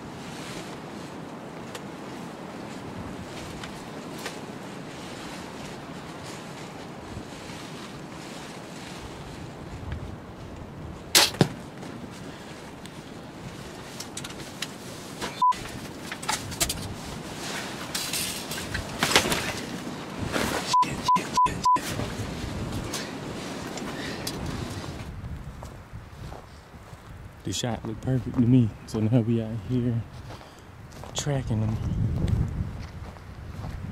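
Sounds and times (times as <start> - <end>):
rustling: 0.0 - 20.8
arrow striking: 11.1 - 11.6
bowstring release crack: 11.2 - 11.6
censor bleeps: 15.3 - 15.6, 20.7 - 21.9.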